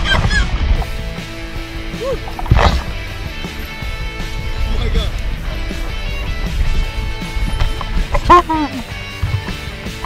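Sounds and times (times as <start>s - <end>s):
background music: 0.0s - 10.0s
man yelling and laughing: 8.2s - 8.9s.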